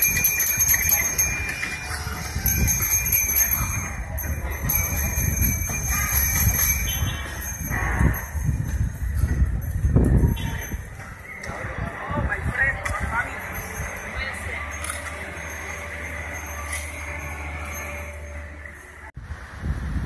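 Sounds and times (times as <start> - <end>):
small bells jingling: 0.0 - 12.0, 12.6 - 19.2
wind on microphone: 0.0 - 14.6, 19.2 - 20.0
street noise rumble: 0.0 - 20.0.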